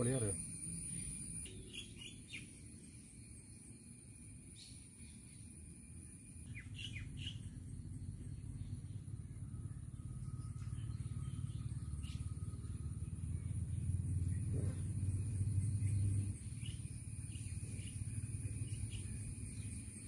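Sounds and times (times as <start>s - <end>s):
low rumble: 7.3s - 19.8s
high bird chirps: 9.7s - 20.0s.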